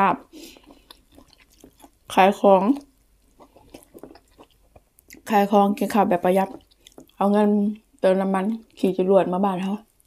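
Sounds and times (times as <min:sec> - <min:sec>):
person chewing: 0:00.1 - 0:07.2
person speaking: 0:05.1 - 0:06.6.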